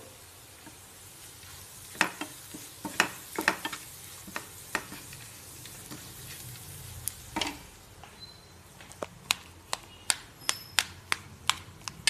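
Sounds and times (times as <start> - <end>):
faint sizzle: 0.0 - 8.9
spatula scraping and tapping pan: 1.9 - 6.5, 7.3 - 7.7.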